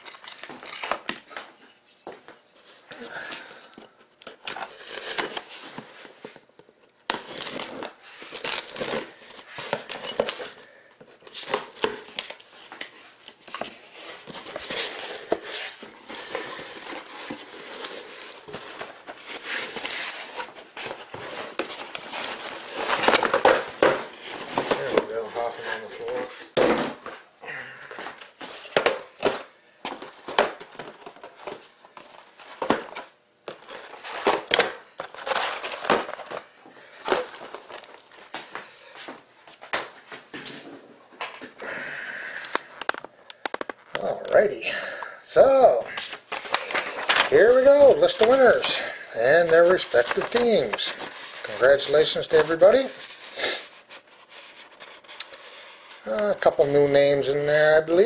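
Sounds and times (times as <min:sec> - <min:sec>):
boxes knocking when set down: 0:26.6 - 0:27.2.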